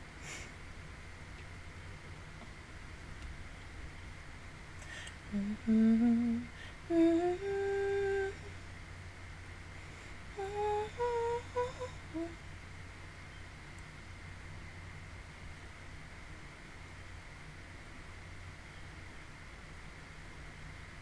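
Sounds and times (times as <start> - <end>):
woman humming a tune: 4.9 - 8.6, 10.4 - 12.4.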